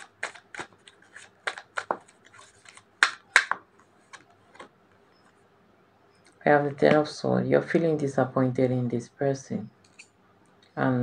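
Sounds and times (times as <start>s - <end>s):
cards being shuffled: 0.0s - 4.7s.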